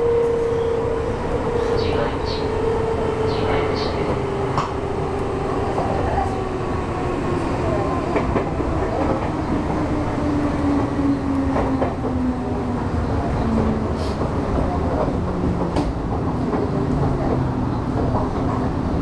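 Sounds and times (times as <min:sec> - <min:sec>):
train rumble: 0:00.0 - 0:19.0.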